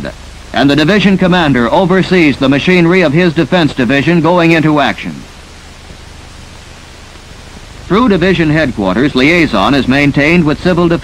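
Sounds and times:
old film soundtrack hiss: 0.0s - 11.0s.

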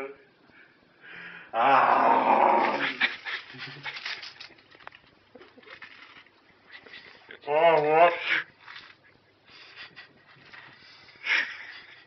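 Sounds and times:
man roaring: 1.5s - 3.0s.

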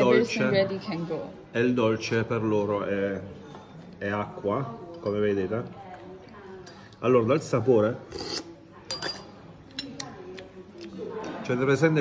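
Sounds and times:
spoon tasting sounds: 4.8s - 11.4s.

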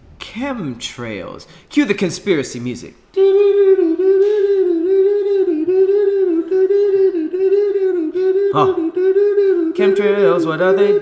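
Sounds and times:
man crooning a wavering note: 3.2s - 11.0s.

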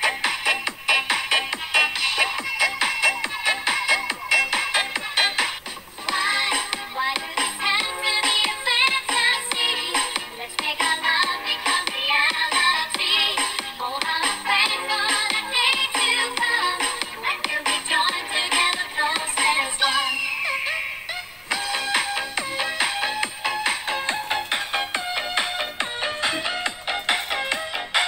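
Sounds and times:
song with sung vocals: 0.0s - 28.0s.

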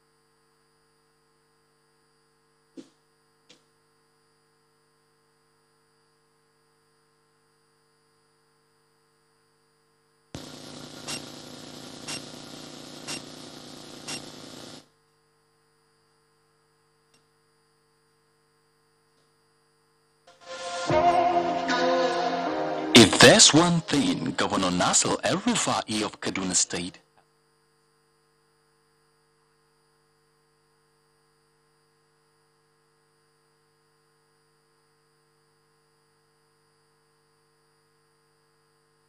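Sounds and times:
faint mains hum: 0.0s - 39.0s.

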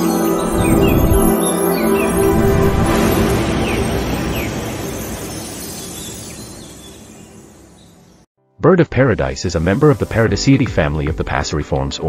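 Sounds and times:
even rushing noise: 0.0s - 6.8s.

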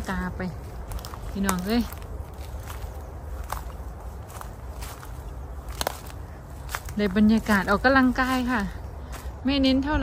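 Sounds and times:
footsteps on dry leaves: 0.0s - 10.0s
twig cracking: 0.7s - 7.6s.

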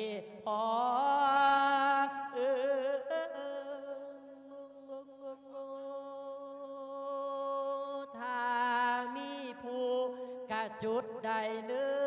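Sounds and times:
man singing through a microphone: 0.0s - 12.0s.

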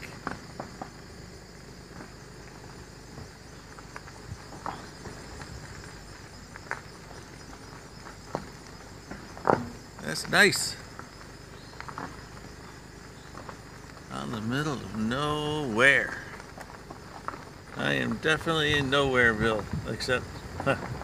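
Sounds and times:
insects buzzing: 0.0s - 21.0s.

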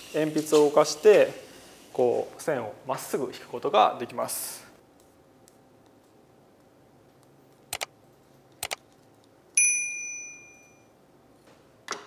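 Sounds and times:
bright bell ding: 9.6s - 10.9s.

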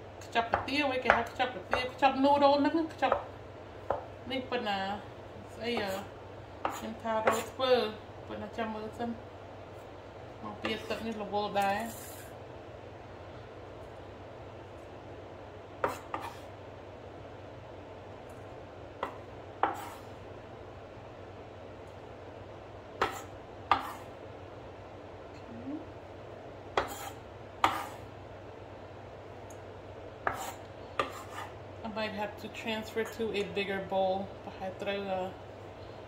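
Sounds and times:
food scraped off board: 15.8s - 16.5s, 19.6s - 20.1s, 23.0s - 24.1s, 26.8s - 28.1s, 30.2s - 31.6s.

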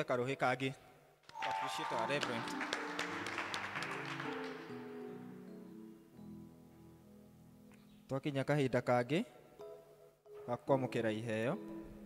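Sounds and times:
congregation applauding: 1.3s - 5.0s
instrumental music with held chords: 1.3s - 8.0s.

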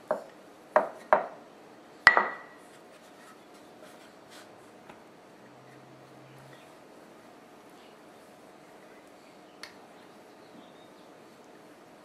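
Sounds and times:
rolling pin knocking on counter: 0.1s - 1.4s, 2.1s - 2.5s
faint handling sounds: 2.6s - 6.8s.

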